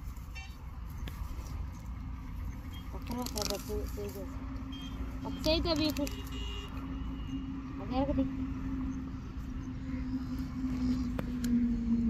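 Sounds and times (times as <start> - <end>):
low hum and rumble: 0.0 - 12.0
person speaking: 2.9 - 4.4, 5.2 - 6.3.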